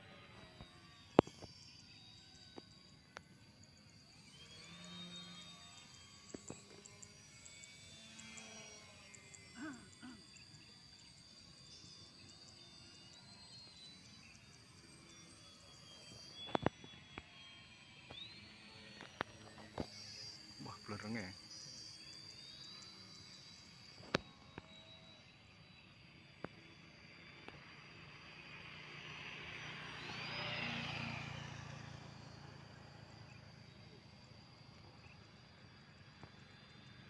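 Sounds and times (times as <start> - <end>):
steady high tone: 0.0 - 27.9
model plane motor whine: 0.0 - 37.0.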